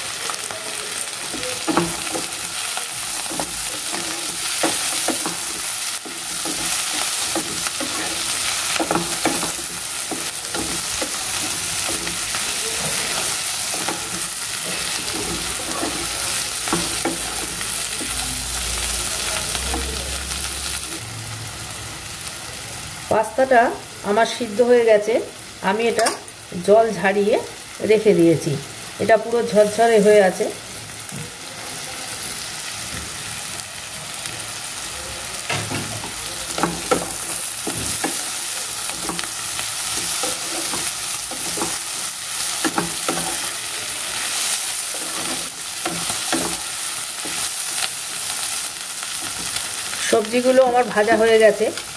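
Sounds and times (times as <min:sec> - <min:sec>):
vegetables sizzling in hot oil: 0:00.0 - 0:51.9.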